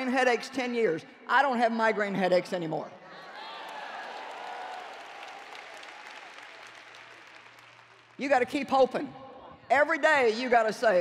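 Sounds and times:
audience applause: 0:03.4 - 0:08.2.

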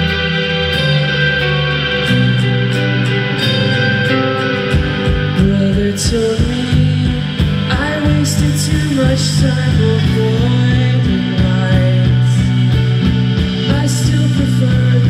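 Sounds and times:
bass: 0:00.0 - 0:15.0
drums: 0:00.0 - 0:15.0
electric guitars: 0:00.0 - 0:15.0
keyboard: 0:00.0 - 0:15.0.

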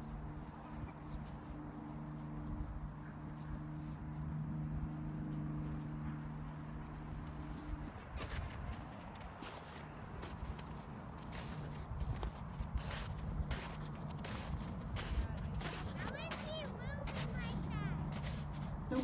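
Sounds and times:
footsteps crunching in snow: 0:00.1 - 0:19.0.

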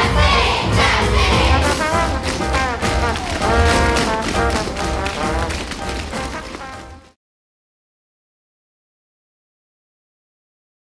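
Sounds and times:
upbeat music: 0:00.0 - 0:07.2
tap shoes on stage floor: 0:01.6 - 0:07.2.

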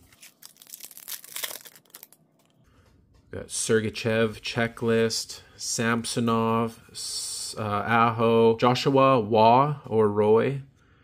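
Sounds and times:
foil wrapper crackling: 0:00.0 - 0:02.6.

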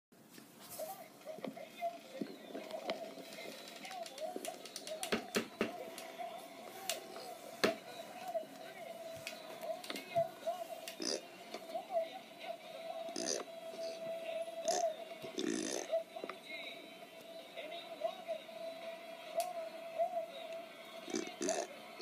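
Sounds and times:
muffled voices: 0:00.6 - 0:22.0.

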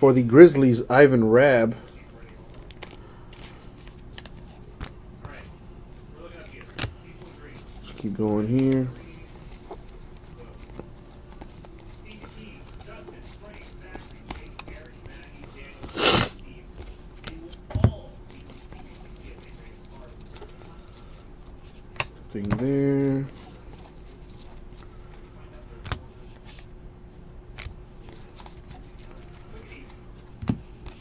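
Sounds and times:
cards rustling: 0:01.4 - 0:05.6, 0:06.2 - 0:26.8, 0:27.5 - 0:31.0.

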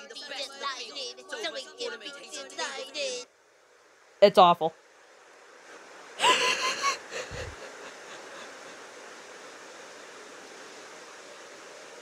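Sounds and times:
faint steady hiss: 0:00.0 - 0:12.0
high-pitched wheezy laugh: 0:06.2 - 0:08.8.

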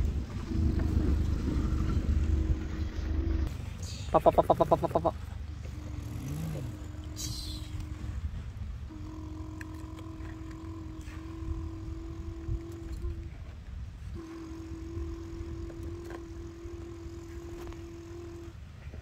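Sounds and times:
child humming engine drone: 0:00.0 - 0:19.0
low rumble: 0:00.0 - 0:19.0.

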